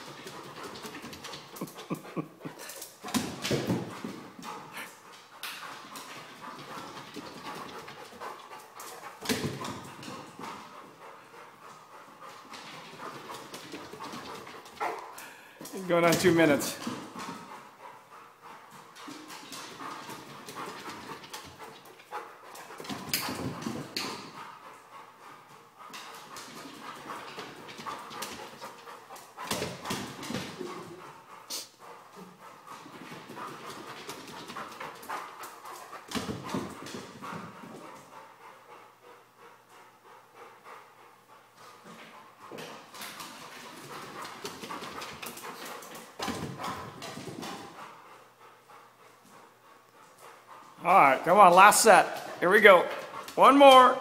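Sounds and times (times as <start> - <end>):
dog paws clattering on wooden stairs: 0.0 - 39.2, 41.3 - 53.8
dog panting: 0.0 - 54.0.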